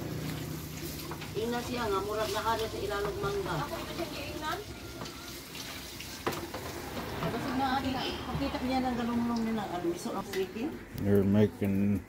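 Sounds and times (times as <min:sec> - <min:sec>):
food sizzling in oil: 0:00.0 - 0:10.6.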